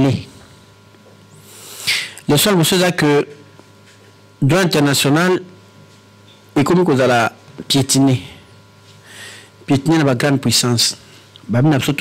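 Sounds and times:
man speaking: 2.3 - 3.4, 4.4 - 5.5, 6.6 - 8.4, 9.7 - 12.0.

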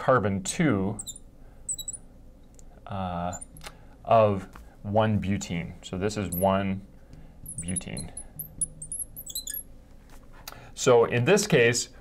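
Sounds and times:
marker squeaking on glass: 1.0 - 2.0, 3.3 - 3.6, 6.2 - 6.6, 7.4 - 9.7
man talking: 2.9 - 3.5, 4.1 - 6.9, 7.6 - 8.2, 10.8 - 12.0.

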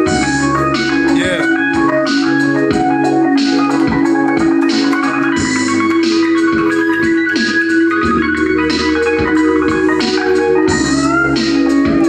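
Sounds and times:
bass line: 0.0 - 12.0
organ-like keyboard chord: 0.0 - 12.0.

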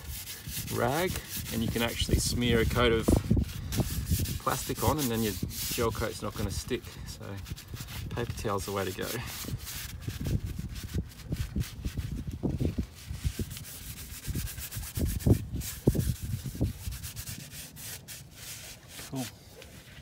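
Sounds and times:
paper towel rubbing on hull: 0.0 - 20.0.

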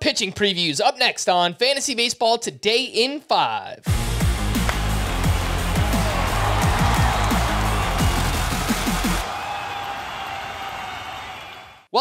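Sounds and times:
intro music with heavy bass beat: 3.9 - 9.2.

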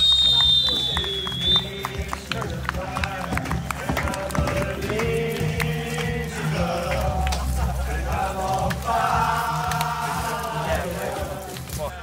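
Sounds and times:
referee's whistle: 0.0 - 2.1
people clapping: 0.0 - 12.0
voices: 0.0 - 12.0.

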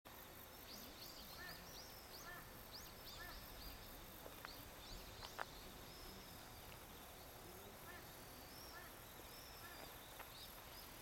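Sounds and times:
outdoor background hiss: 0.1 - 11.0
small birds chirping: 0.2 - 11.0.

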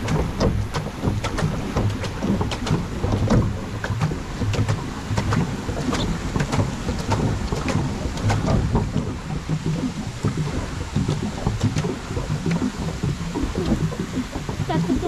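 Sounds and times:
low rumble: 0.0 - 15.0
paddle wheel churning water: 0.0 - 15.0
water splashes: 0.0 - 15.0.

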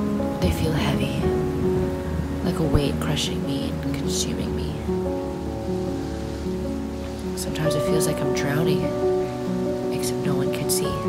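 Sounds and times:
rain hiss: 0.0 - 11.0
soft piano music: 0.0 - 11.0.

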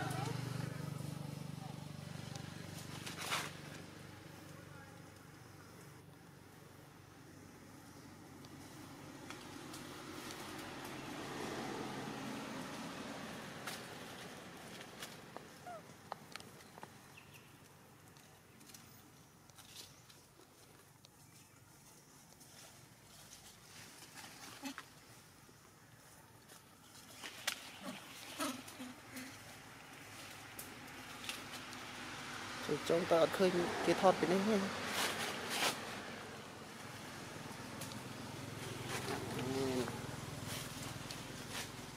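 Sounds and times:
rush of outdoor noise: 0.0 - 41.9.

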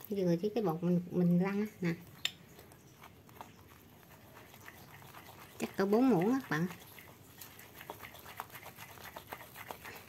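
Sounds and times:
spoon stirring batter: 0.0 - 10.0.

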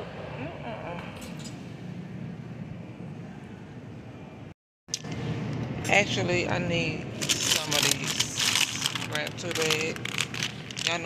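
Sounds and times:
shopping cart rolling: 7.2 - 11.0.

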